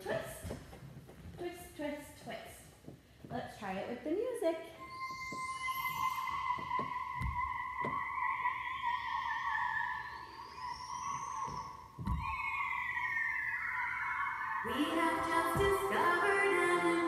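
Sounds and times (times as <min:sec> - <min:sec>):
wavering theremin-like tone: 0:04.7 - 0:17.0
low thumps: 0:05.0 - 0:08.2, 0:11.1 - 0:12.6, 0:14.7 - 0:17.0.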